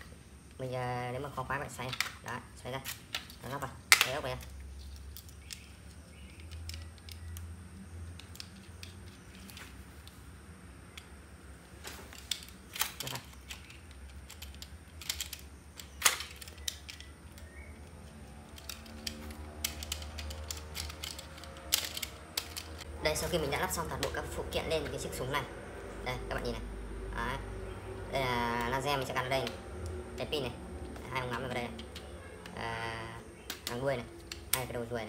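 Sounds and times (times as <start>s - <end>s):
low steady hum: 0.0s - 35.0s.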